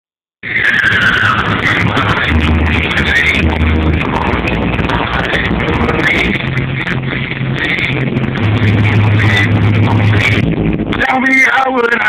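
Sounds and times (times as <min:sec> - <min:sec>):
loud distorted car stereo music: 0:00.4 - 0:12.0.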